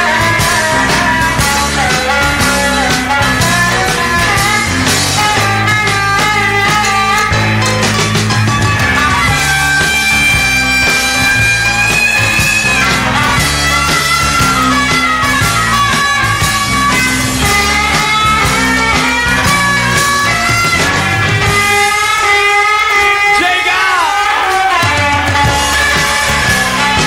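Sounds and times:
reedy harmonica note: 0.0s - 23.4s
bass guitar: 0.0s - 27.0s
drums: 0.0s - 27.0s
live rock band: 0.0s - 27.0s.

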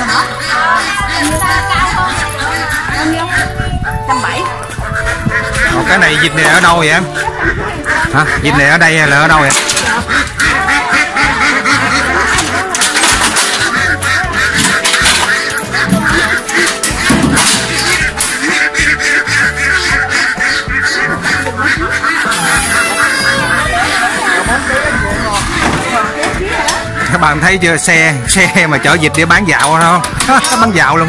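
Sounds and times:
background music with steady beat: 0.0s - 31.0s
ducks quacking: 0.0s - 31.0s.

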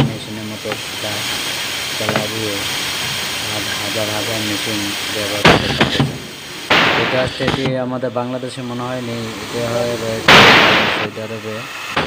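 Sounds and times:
faint high whine: 0.0s - 12.0s
workshop background hiss: 0.0s - 12.0s.

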